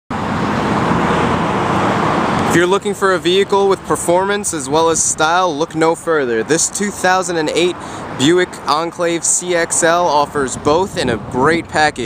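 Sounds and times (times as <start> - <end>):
motor vehicle hum and hiss: 0.1 - 12.0.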